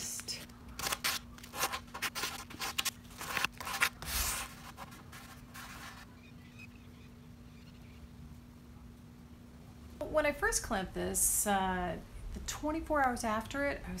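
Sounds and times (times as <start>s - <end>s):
low steady hum: 0.0s - 14.0s.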